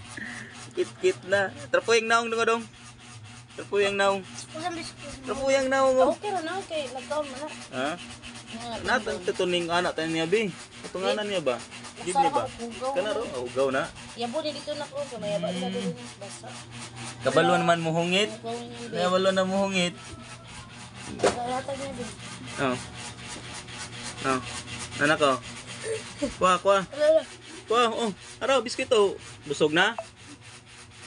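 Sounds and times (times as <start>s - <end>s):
fast rubbing or scratching: 0.0s - 31.0s
adult humming: 14.2s - 16.6s, 25.7s - 28.0s.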